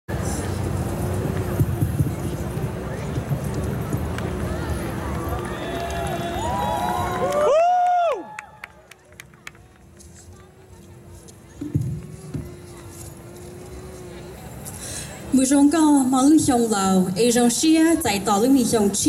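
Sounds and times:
crowd noise: 0.1s - 19.0s.

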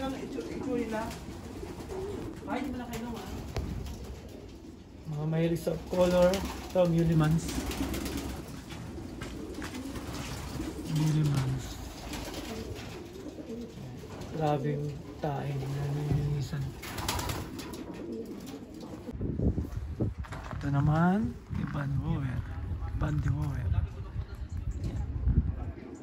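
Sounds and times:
pigeons cooing: 0.0s - 19.2s, 24.9s - 26.0s.

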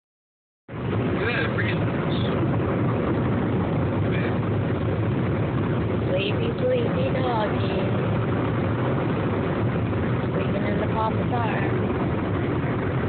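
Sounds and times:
road and engine noise in car: 0.7s - 13.0s.

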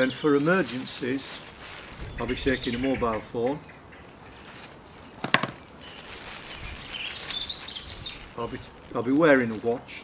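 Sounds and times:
faint bird chirping: 0.0s - 8.5s
phone set down on wooden table: 5.2s - 5.6s.

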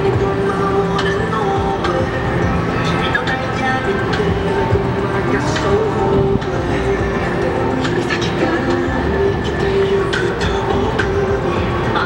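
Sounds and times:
heavy traffic rumble: 0.0s - 12.0s
steady hum: 0.0s - 12.0s.

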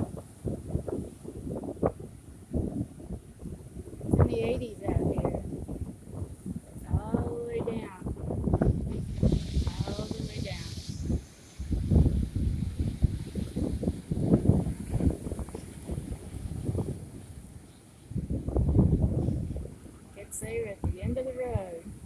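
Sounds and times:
waves washing against rocks: 0.0s - 17.6s
wind buffeting microphone: 0.0s - 22.0s.

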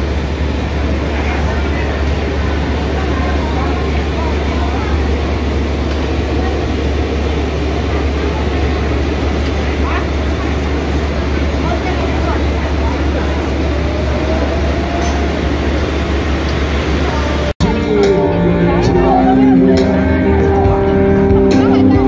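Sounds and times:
faint indistinct voices: 0.0s - 22.0s
loud low rumble: 0.0s - 22.0s.

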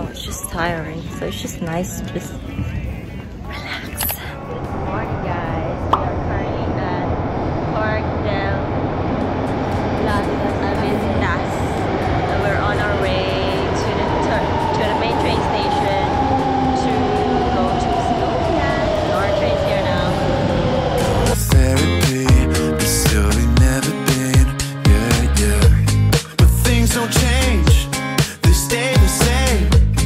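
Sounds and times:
train rumbling: 0.0s - 23.9s
train whine falling in pitch: 4.4s - 21.4s.

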